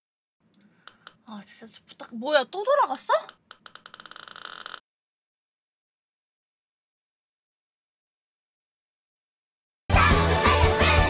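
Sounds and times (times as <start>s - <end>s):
rapid ticks: 0.5s - 1.3s, 3.0s - 4.8s.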